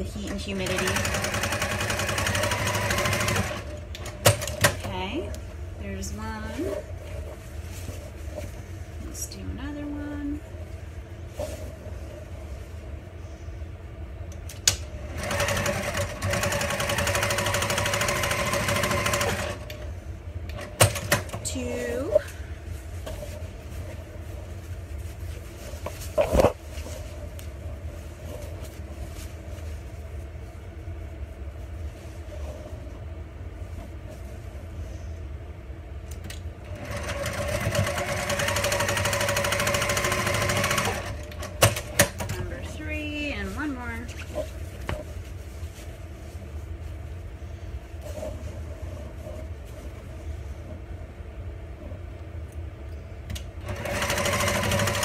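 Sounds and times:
electric sewing machine stitching: 0:00.4 - 0:04.7, 0:15.0 - 0:19.7, 0:36.7 - 0:42.2, 0:53.6 - 0:55.0
fabric handling: 0:06.0 - 0:13.2, 0:21.4 - 0:34.8, 0:42.4 - 0:51.3.

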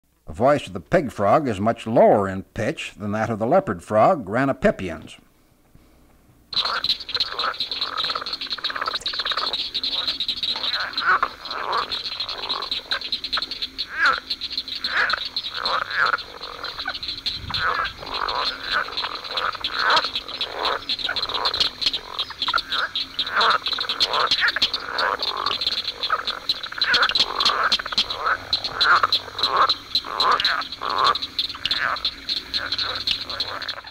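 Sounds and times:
frogs croaking in chorus: 0:06.5 - 0:33.9.

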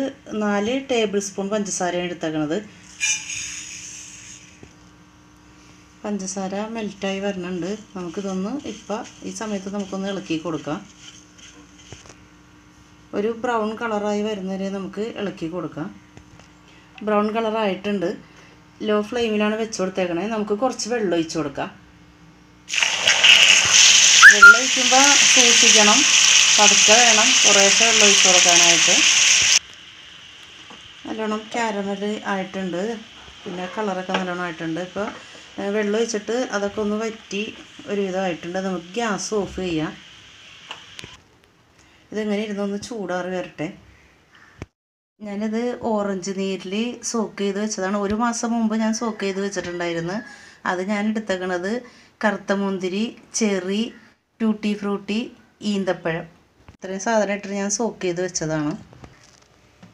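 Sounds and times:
sugar pouring into pan: 0:22.7 - 0:32.0
water hissing in hot sugar: 0:22.7 - 0:41.2.

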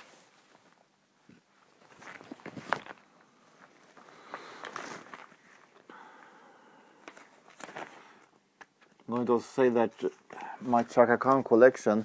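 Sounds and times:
cardboard record sleeves handled: 0:00.0 - 0:05.8.

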